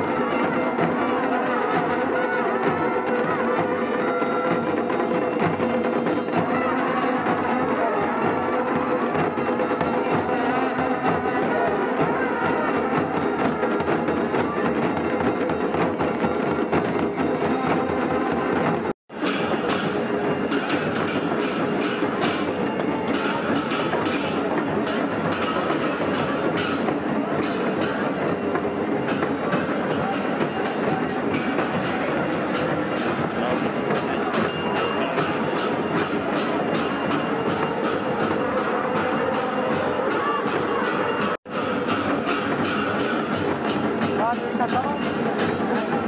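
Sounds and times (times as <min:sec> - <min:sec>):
procession band of drums and bells: 0:00.0 - 0:46.0.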